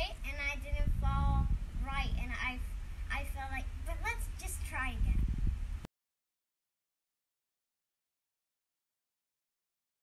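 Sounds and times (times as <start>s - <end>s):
girl singing: 0.0s - 5.2s
low rumbling noise: 0.0s - 5.9s.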